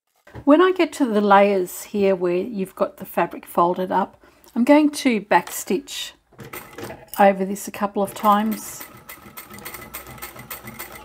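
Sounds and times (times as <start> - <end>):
sewing machine running: 8.0 - 11.0.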